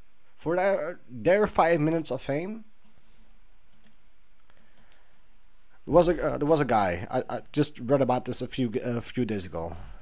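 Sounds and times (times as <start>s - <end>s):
man speaking: 0.4s - 2.7s, 5.8s - 10.0s
faint clicks: 3.7s - 5.1s.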